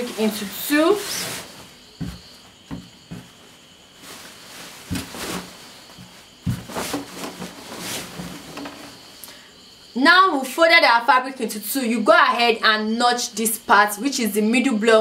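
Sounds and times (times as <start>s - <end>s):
fabric rustling and swishing: 0.0s - 9.0s.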